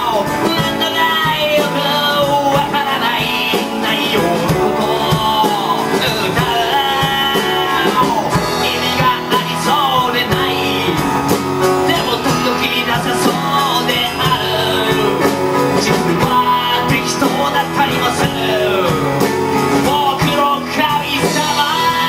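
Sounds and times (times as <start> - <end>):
folk-rock band playing: 0.0 - 22.0
man singing into a microphone: 0.0 - 22.0
strummed acoustic guitar: 0.0 - 22.0.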